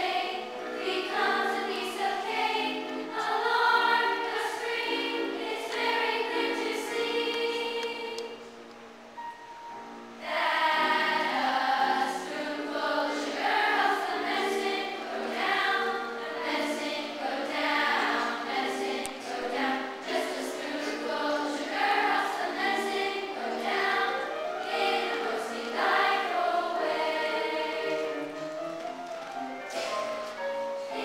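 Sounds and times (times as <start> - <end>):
children's choir singing: 0.0 - 31.0.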